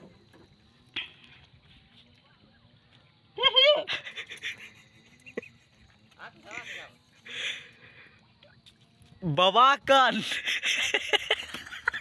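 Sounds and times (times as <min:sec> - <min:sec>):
breathy panting laughter: 0:03.8 - 0:05.8, 0:10.2 - 0:12.0.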